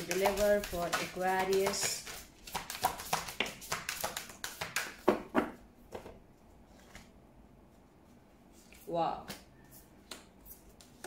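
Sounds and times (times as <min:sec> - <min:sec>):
cards being shuffled: 0:00.0 - 0:05.0.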